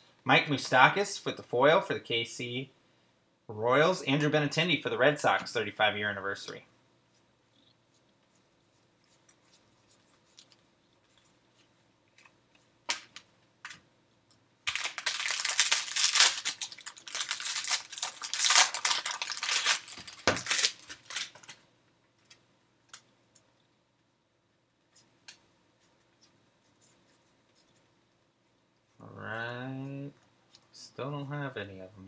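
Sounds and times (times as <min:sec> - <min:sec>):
foil wrapper crinkling and tearing: 0:14.6 - 0:21.6.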